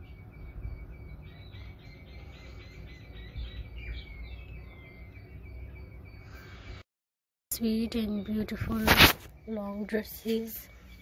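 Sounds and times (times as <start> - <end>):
birds chirping: 0.0 - 6.8, 7.5 - 11.0.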